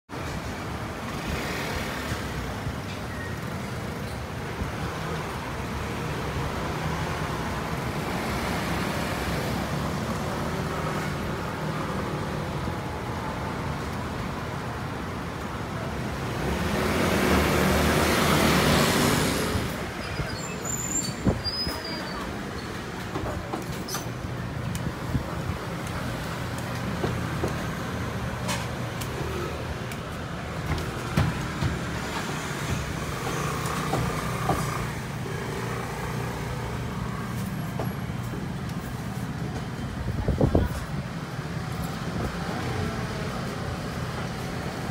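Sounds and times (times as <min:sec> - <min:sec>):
street traffic: 0:00.1 - 0:44.9.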